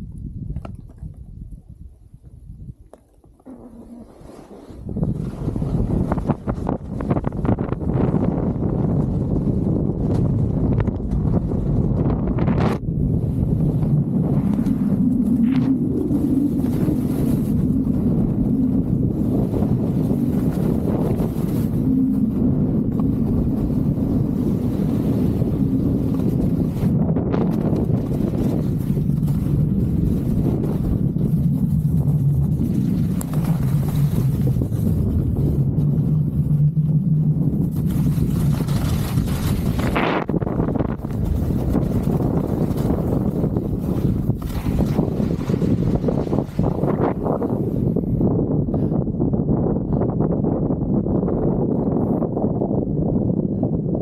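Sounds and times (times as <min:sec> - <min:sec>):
wind buffeting microphone: 0:00.0 - 0:54.0
skis carving through snow: 0:14.0 - 0:36.6, 0:37.3 - 0:47.7.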